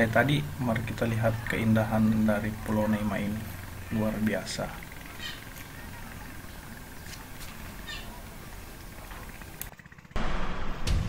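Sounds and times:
outdoor ambient hiss: 0.0s - 11.0s.

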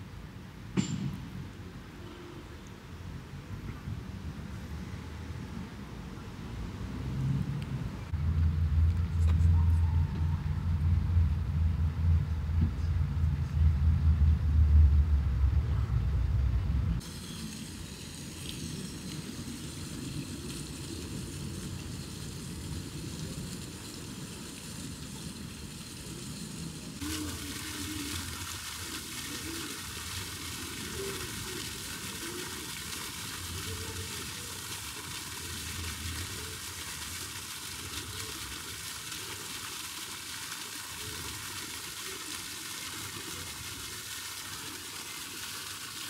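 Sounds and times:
loud low rumble: 10.2s - 17.0s
fountain water splashing: 17.0s - 46.0s.

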